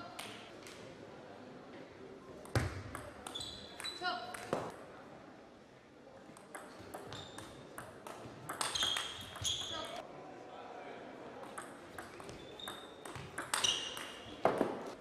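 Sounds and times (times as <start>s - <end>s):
table tennis ball clicking: 2.4s - 4.8s, 6.4s - 10.0s, 11.4s - 14.6s.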